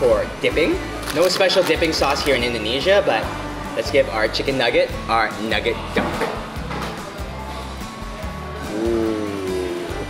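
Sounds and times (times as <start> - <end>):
background music with bass line: 1.8 - 10.0.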